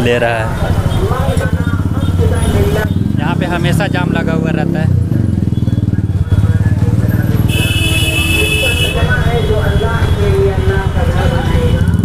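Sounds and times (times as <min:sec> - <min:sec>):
motorcycle engines idling: 0:00.0 - 0:12.0
shrill vehicle horn: 0:07.4 - 0:10.2.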